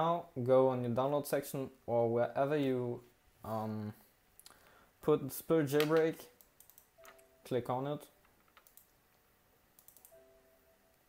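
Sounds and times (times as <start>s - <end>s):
faint steady tone: 6.7s - 9.2s, 9.8s - 11.0s
faint clicks: 8.5s - 9.2s, 9.8s - 10.2s.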